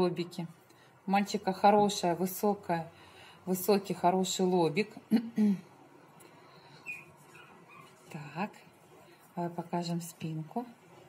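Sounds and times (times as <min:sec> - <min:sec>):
puppy squeaking: 0:06.8 - 0:08.0.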